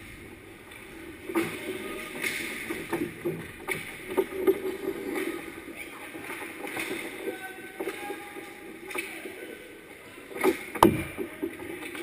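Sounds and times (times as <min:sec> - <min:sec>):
hockey sticks and puck clacking: 0:00.7 - 0:09.6, 0:10.2 - 0:12.0.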